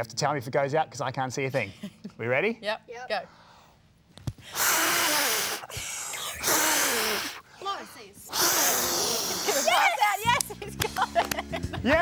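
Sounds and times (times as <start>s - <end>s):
man blowing breathy blasts: 4.4s - 7.6s, 8.2s - 9.8s
laughter: 10.6s - 12.0s.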